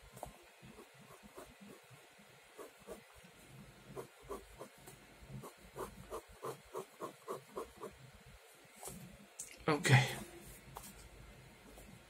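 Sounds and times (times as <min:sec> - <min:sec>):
pen scratching on paper: 0:00.7 - 0:01.9, 0:02.6 - 0:03.1, 0:03.9 - 0:04.8, 0:05.4 - 0:08.0.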